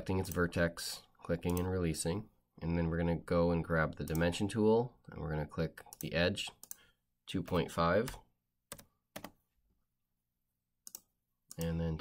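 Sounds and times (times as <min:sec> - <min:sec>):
computer keyboard keystrokes: 0:07.5 - 0:09.4.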